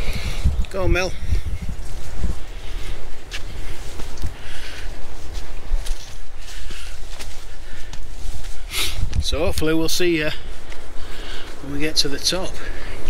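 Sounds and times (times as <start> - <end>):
low rumble on microphone: 0.0 - 6.8
footsteps on dirt path: 0.0 - 13.0
leaves and plants rustling: 0.0 - 13.0.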